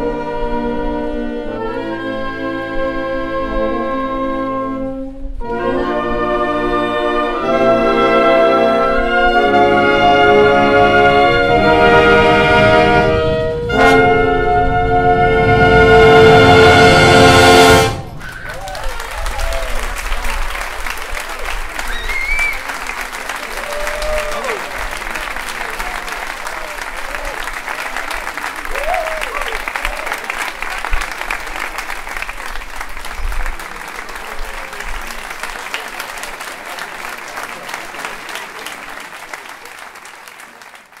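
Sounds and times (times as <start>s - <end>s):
audience applauding: 17.5s - 41.0s.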